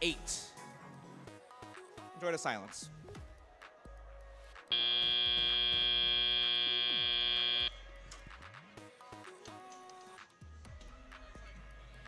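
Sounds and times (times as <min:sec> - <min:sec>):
loud steady buzzer tone: 0:04.7 - 0:07.7.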